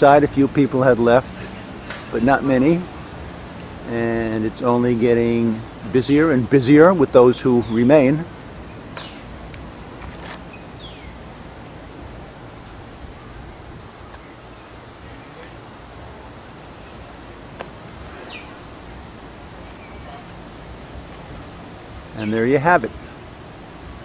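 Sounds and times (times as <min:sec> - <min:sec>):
insects: 0:00.0 - 0:24.0
steady hiss: 0:00.0 - 0:24.0.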